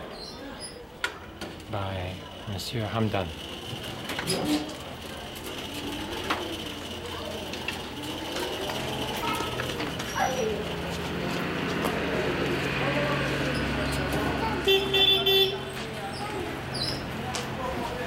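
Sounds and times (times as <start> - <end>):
faint voices: 0.0 - 18.0.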